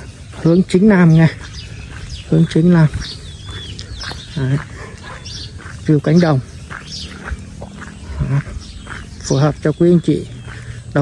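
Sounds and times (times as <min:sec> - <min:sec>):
person speaking: 0:00.0 - 0:07.2, 0:08.0 - 0:11.0
outdoor background noise: 0:00.0 - 0:11.0.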